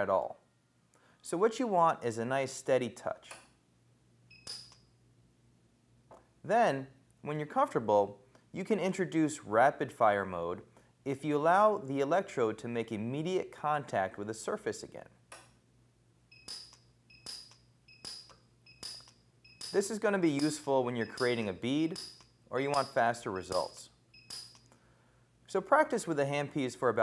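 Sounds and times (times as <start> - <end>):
short high beeps: 4.3 - 4.8, 16.3 - 19.8, 21.0 - 21.4, 24.1 - 24.6
spot weld snap: 4.4 - 4.9, 16.4 - 24.7.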